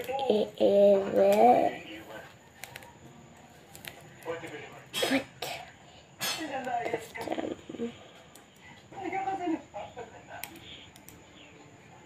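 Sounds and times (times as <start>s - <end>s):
girl speaking indistinctly: 0.2s - 1.8s
girl coughing: 5.0s - 5.6s.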